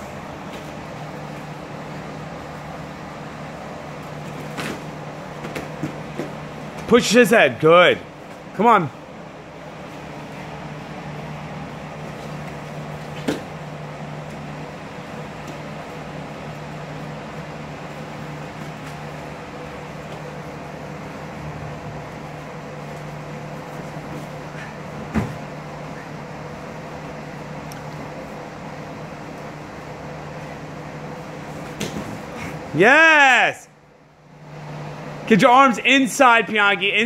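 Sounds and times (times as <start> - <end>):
floor fan humming: 0.0 - 37.0.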